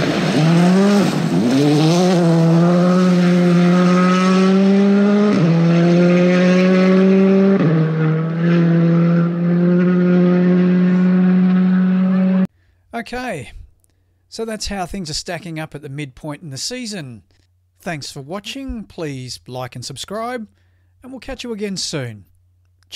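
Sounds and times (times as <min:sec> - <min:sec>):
rally car engine revving: 0:00.0 - 0:12.5.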